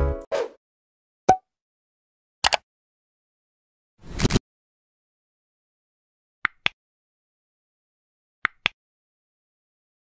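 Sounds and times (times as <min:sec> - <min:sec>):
double mouse click: 0:02.4 - 0:02.6.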